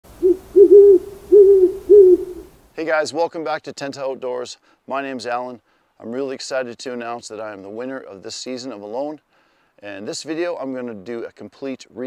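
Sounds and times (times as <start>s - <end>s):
owl hooting: 0.1s - 2.6s.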